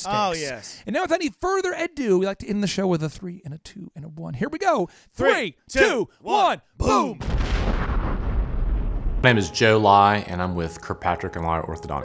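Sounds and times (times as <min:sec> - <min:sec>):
person shouting: 0:05.2 - 0:07.2
explosion blast with low rumble: 0:07.2 - 0:09.3.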